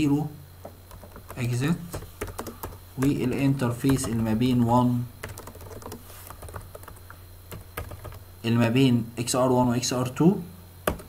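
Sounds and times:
computer keyboard typing: 0.9s - 8.2s.

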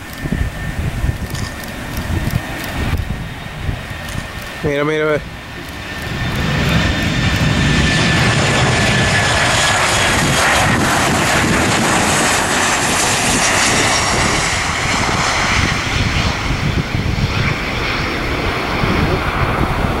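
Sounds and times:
falling jet engine whine: 0.0s - 20.0s
jet engine noise: 0.0s - 20.0s.

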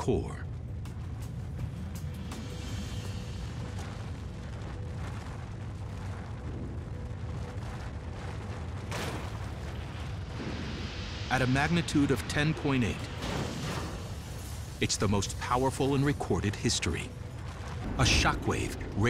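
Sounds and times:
deep earthquake rumble: 0.0s - 19.0s
dramatic music score: 0.0s - 19.0s.

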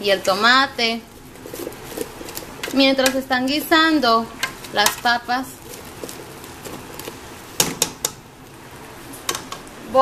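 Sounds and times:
plastic spoon stirring pot: 0.0s - 8.2s.

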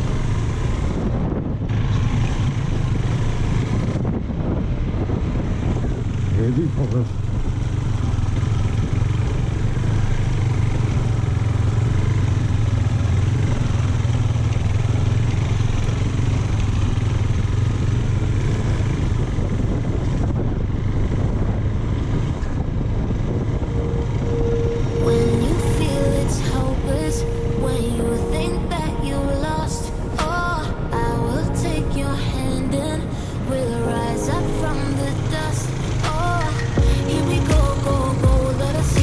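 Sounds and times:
motorcycle engine running: 0.0s - 39.0s
wind and road noise: 0.0s - 39.0s
background music: 23.6s - 39.0s.

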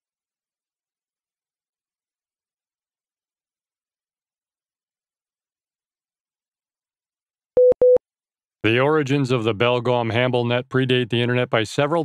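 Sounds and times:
short loud beeps: 7.6s - 8.0s.

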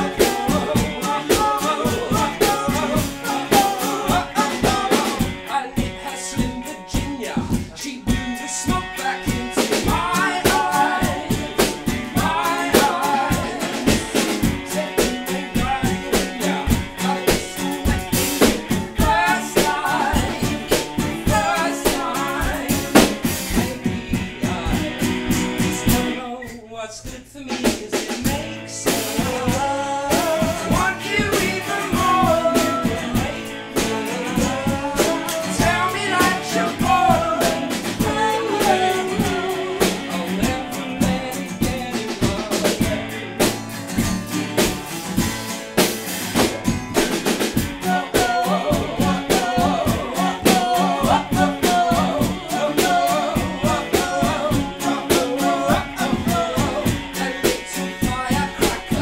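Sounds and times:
strummed acoustic guitars: 0.0s - 26.6s, 27.4s - 59.0s
man singing: 0.0s - 43.6s, 47.4s - 59.0s
drum kit: 0.0s - 59.0s.

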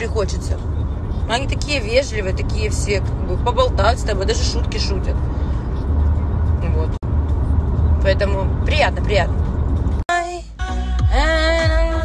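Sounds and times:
car cabin engine and road noise: 0.0s - 12.0s.

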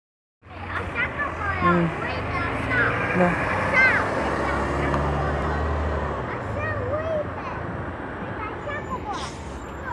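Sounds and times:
people's voices: 0.5s - 9.9s
bus diesel engine pulling away: 0.6s - 7.4s, 8.5s - 9.9s.

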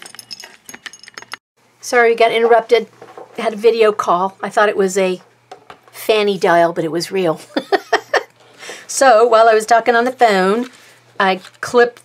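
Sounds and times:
light clicks and metallic clinks: 0.0s - 1.4s
person talking: 1.8s - 5.3s, 8.9s - 12.0s.

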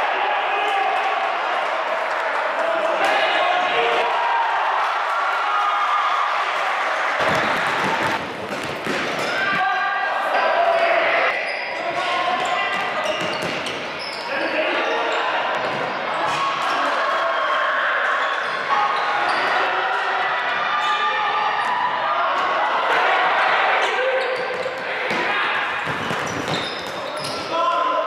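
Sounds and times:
shouting and chatter: 0.0s - 8.3s, 9.1s - 28.0s.

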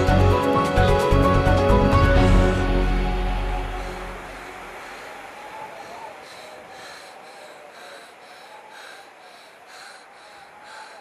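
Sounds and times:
music: 0.0s - 4.7s
heavy wheezy panting: 4.8s - 11.0s.

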